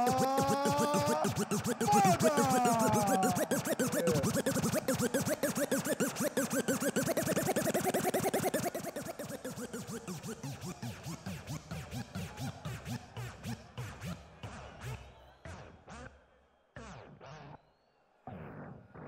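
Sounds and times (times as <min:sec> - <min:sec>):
record scratching: 0:00.0 - 0:10.6
music: 0:00.0 - 0:19.0.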